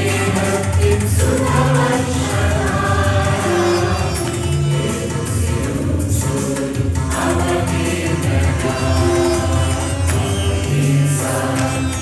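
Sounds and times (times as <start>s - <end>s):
choir singing: 0.0s - 12.0s
instrumental accompaniment with bass: 0.0s - 12.0s
percussion strikes: 0.0s - 12.0s.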